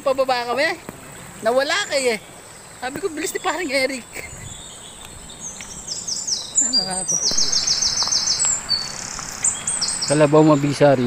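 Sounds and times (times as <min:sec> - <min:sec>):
bird chirping: 0:01.4 - 0:11.0.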